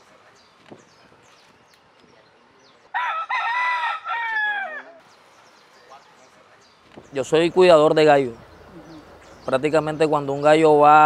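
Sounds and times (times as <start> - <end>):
rooster crowing: 2.9 - 5.0.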